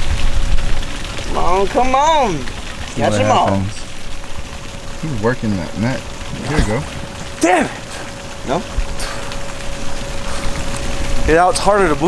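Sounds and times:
water splashing around swimmer: 0:00.0 - 0:12.0.

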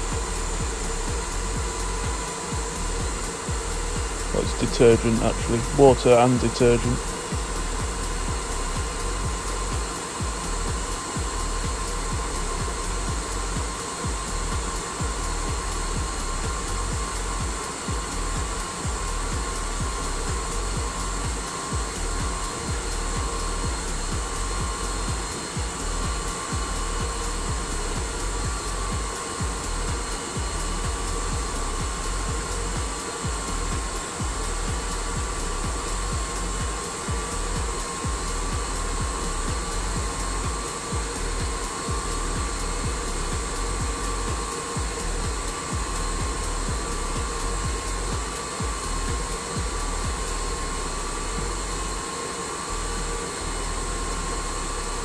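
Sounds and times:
constant rushing noise: 0:00.0 - 0:52.8
turbofan whizzing whine: 0:00.0 - 0:55.0.

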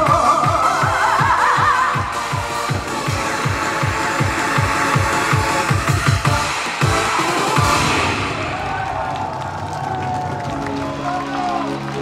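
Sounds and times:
electronic backing track: 0:00.0 - 0:08.6
electronic bass-drum beat: 0:00.0 - 0:08.8.

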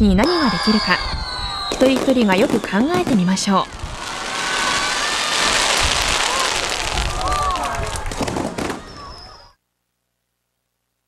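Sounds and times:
fireworks low booms: 0:00.2 - 0:09.4
fireworks crackling: 0:00.2 - 0:09.6
sharp firework crack: 0:01.7 - 0:09.1.

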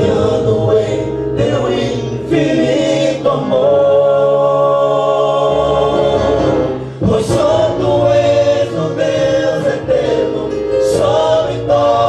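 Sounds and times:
male vocal group singing: 0:00.0 - 0:12.0.

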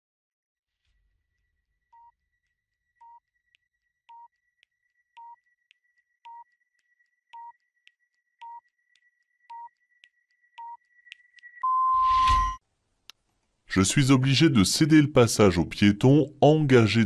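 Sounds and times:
faint timer ticks: 0:03.0 - 0:11.6
short electronic beeps: 0:11.6 - 0:12.6.

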